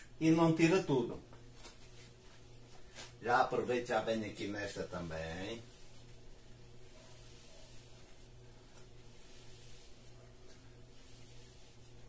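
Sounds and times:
faint low hum: 0.0s - 12.0s
man speaking: 0.2s - 1.2s, 3.2s - 5.7s.

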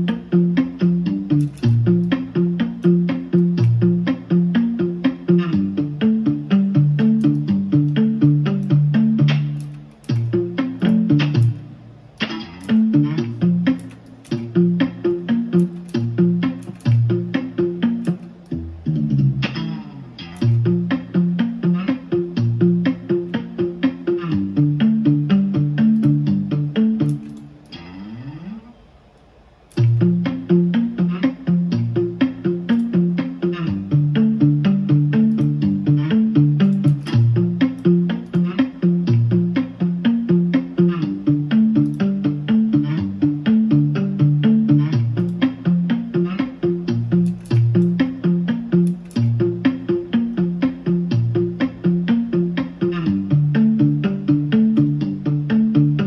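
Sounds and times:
plucked guitar chord loop: 0.0s - 28.7s, 29.7s - 56.0s.

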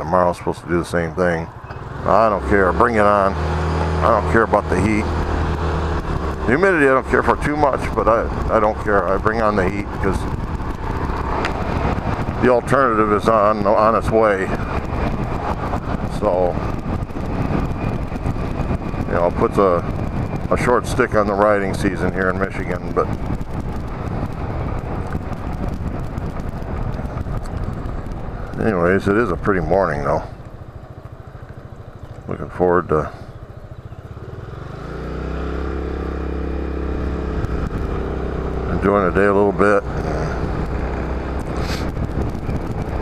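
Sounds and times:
scooter engine and road noise: 0.0s - 43.0s
wind rushing over microphone: 0.0s - 43.0s.

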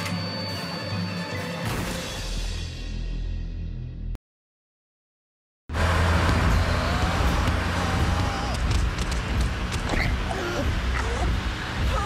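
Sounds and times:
car engine and road rumble: 5.7s - 12.0s.

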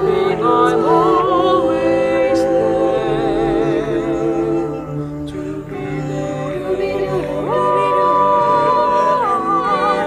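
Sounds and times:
choir singing in harmony: 0.0s - 10.0s.

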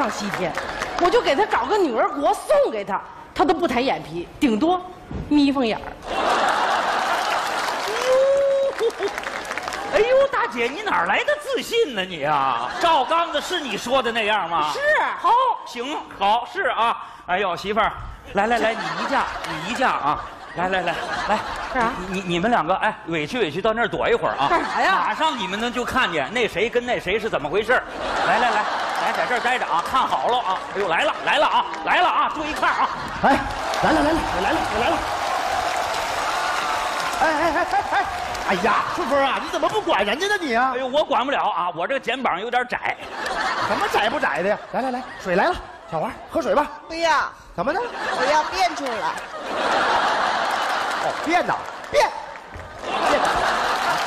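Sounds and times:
audience applauding: 0.0s - 1.6s, 6.0s - 11.2s, 28.2s - 40.1s, 48.8s - 54.0s.

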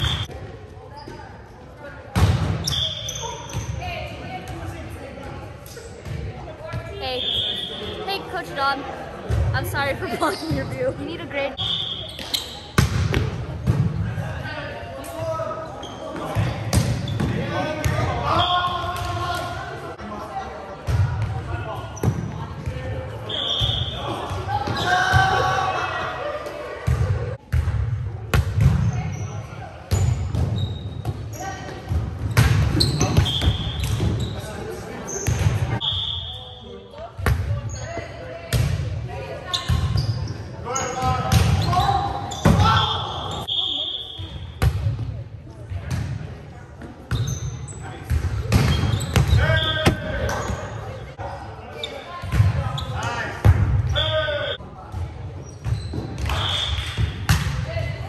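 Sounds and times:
shoes squeaking on court: 0.9s - 1.4s, 9.6s - 12.8s, 29.0s - 31.8s, 32.7s - 35.6s, 39.5s - 42.6s, 47.1s - 47.9s, 48.6s - 51.1s, 55.4s - 56.8s.

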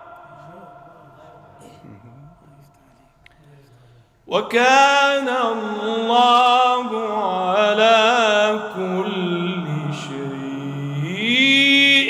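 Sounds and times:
man chanting into microphone: 0.0s - 12.0s.

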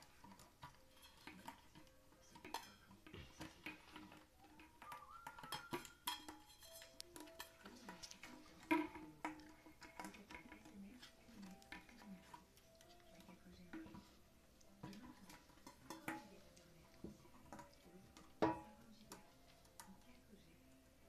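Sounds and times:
metal dog bowl scraping on tile: 0.0s - 18.6s.

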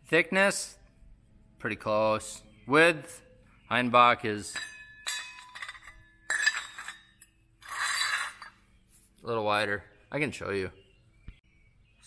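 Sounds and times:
steel shovels clinking together: 4.4s - 8.5s
metallic rasp: 4.5s - 8.6s.

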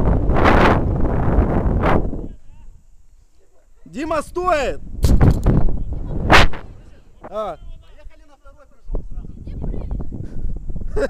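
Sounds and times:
wind buffeting microphone: 0.0s - 3.0s, 4.1s - 8.2s, 8.8s - 11.0s.

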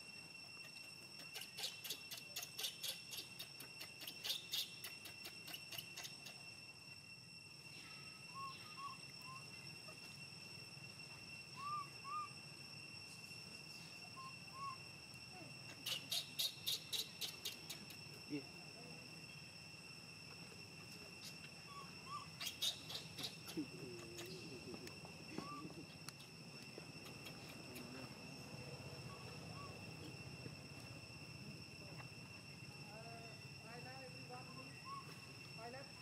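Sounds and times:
faint chirping calls: 0.0s - 6.9s, 7.6s - 18.5s, 20.3s - 30.9s, 34.3s - 35.4s
insects droning: 0.0s - 36.0s
rapid insect clicking: 0.1s - 7.1s, 15.1s - 18.4s, 22.4s - 28.6s.

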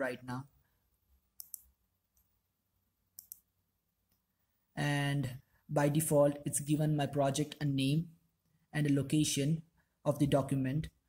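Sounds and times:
computer mouse clicks: 1.4s - 2.4s, 3.2s - 3.5s.

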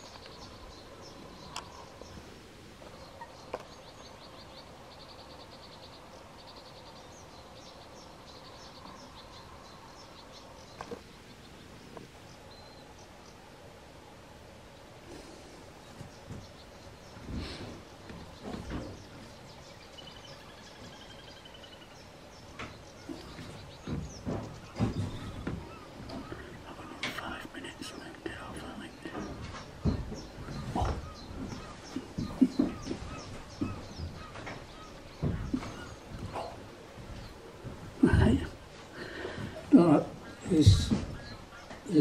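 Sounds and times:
low indistinct voices: 24.3s - 34.4s.

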